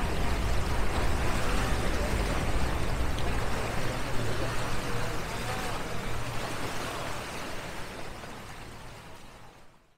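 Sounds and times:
water rushing: 0:00.0 - 0:09.6
wind: 0:00.0 - 0:09.9.

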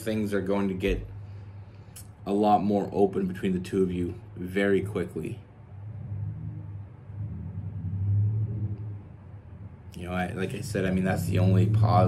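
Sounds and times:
low rumbling hum: 0:00.0 - 0:12.0.

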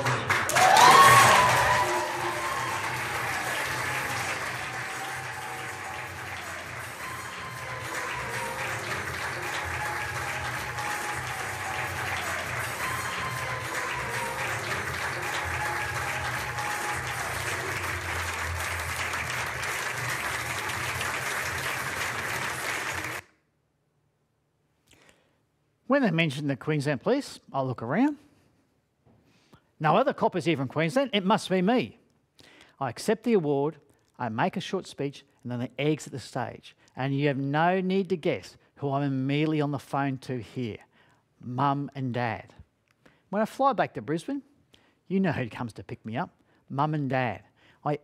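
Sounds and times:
audience applauding: 0:00.0 - 0:23.3
music playing: 0:00.0 - 0:23.3.

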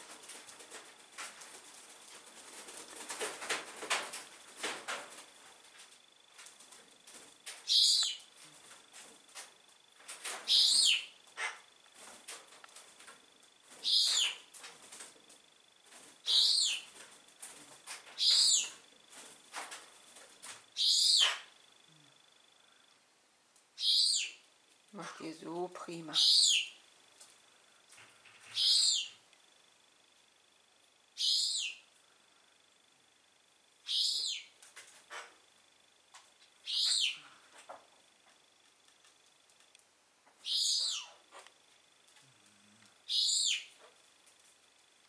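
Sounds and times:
faint high whine: 0:04.9 - 0:35.4, 0:39.7 - 0:45.0
bird squeaky falling call: 0:40.4 - 0:41.1.

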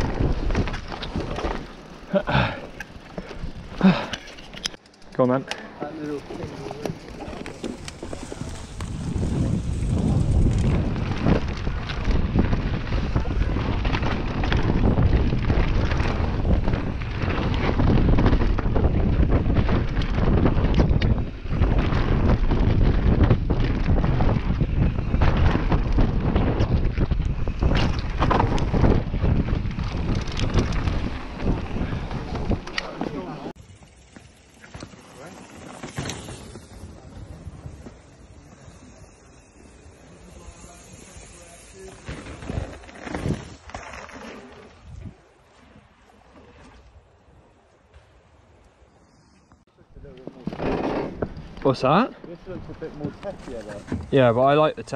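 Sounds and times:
wind rushing over microphone: 0:00.0 - 0:01.4, 0:07.4 - 0:33.7
bike rattling over bumps: 0:00.0 - 0:46.6, 0:49.0 - 0:54.9.

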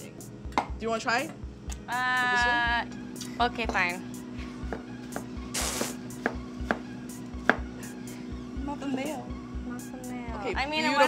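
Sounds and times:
brief hiss: 0:05.5 - 0:06.0
cleaver chopping on a board: 0:06.2 - 0:07.7.

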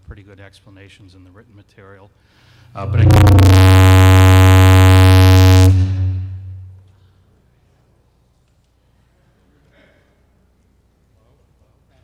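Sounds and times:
loud electrical buzz: 0:02.8 - 0:06.8.

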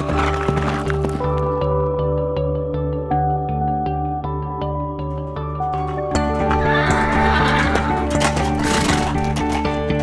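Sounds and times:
background music: 0:00.0 - 0:10.0
horse whinnying: 0:06.5 - 0:09.4.

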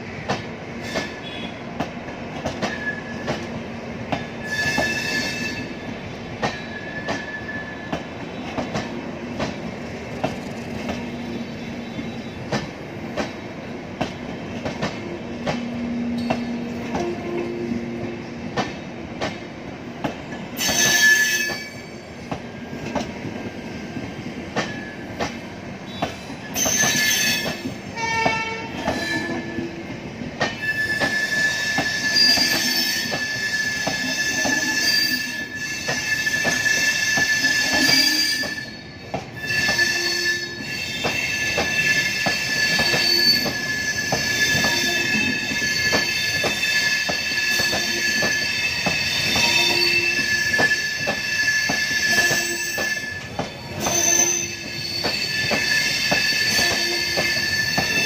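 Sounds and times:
train wheels clicking over rail joints: 0:00.2 - 0:58.0
high wheel squeal: 0:02.7 - 0:03.3, 0:04.4 - 0:05.8, 0:06.5 - 0:08.0, 0:20.6 - 0:22.2, 0:25.9 - 0:27.8, 0:28.7 - 0:29.6, 0:30.5 - 0:58.0.

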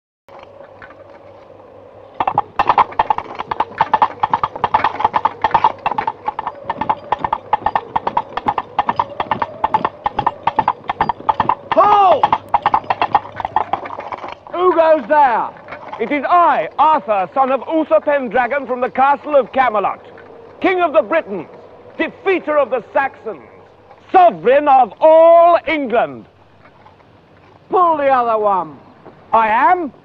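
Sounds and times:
coconut halves clip-clopping: 0:02.2 - 0:22.1.

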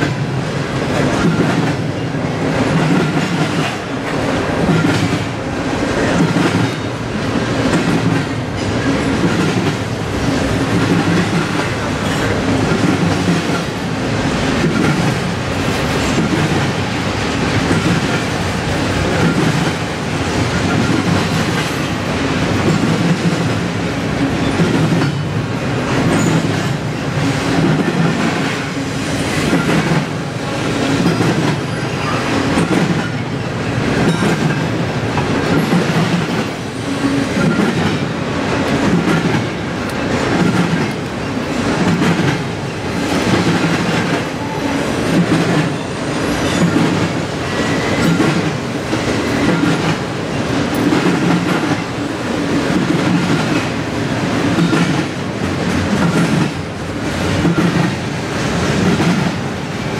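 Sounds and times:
freight train rolling past: 0:00.0 - 0:59.9.

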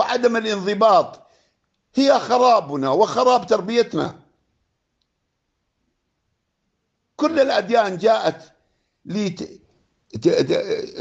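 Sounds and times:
man speaking: 0:00.0 - 0:01.2, 0:01.9 - 0:04.2, 0:07.2 - 0:08.5, 0:09.1 - 0:11.0
faint click: 0:01.6 - 0:01.9, 0:05.0 - 0:05.2.

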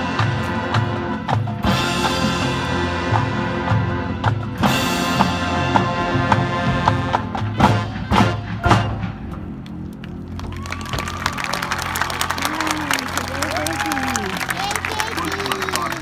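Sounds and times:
marching band ensemble hits: 0:00.0 - 0:09.7
crowd applause with whoops: 0:10.3 - 0:16.0.

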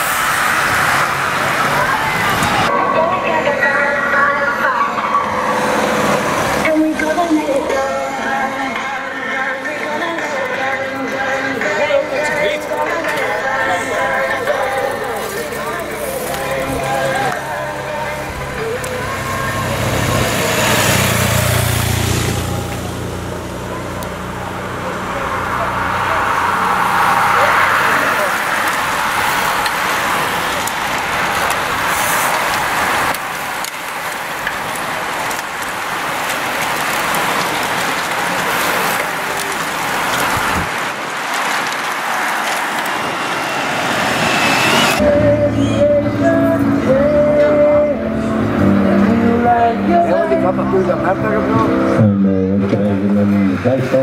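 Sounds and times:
bicycles whirring past: 0:00.0 - 0:03.0, 0:03.6 - 0:52.0
motorcycle passing by: 0:12.8 - 0:35.5, 0:36.2 - 0:54.0.

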